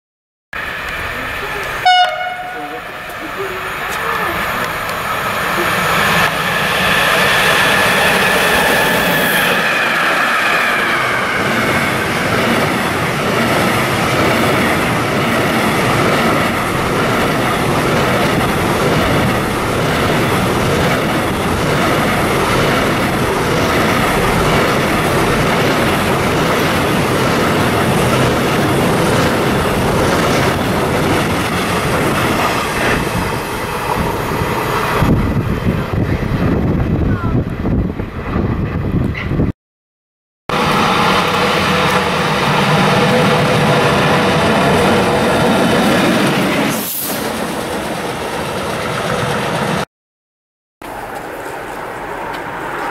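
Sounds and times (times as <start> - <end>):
train wheels rumbling on rails: 0.6 - 39.5, 40.5 - 49.9.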